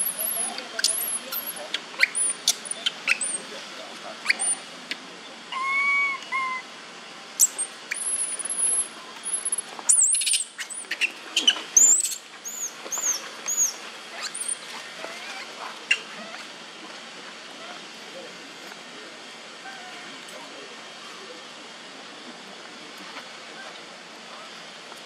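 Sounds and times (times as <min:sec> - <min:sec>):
whistled animal call: 0:05.5 - 0:06.7
squeaky chirps: 0:07.4 - 0:16.1.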